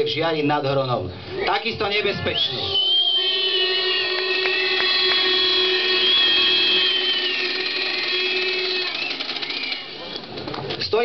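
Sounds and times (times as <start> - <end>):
crowd whistling: 2.0 - 10.4.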